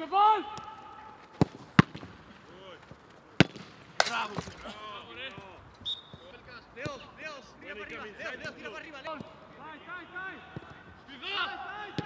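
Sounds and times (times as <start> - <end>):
football being struck: 1.4 - 2.2, 3.4 - 4.6.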